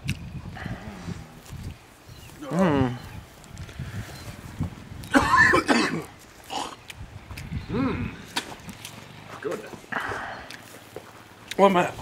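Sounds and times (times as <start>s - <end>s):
man clearing his throat: 5.1s - 6.7s
man coughing: 5.1s - 6.8s.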